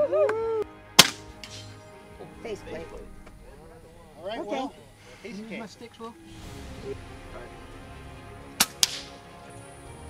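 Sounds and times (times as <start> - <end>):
air rifle firing: 1.0 - 1.7, 8.6 - 9.2.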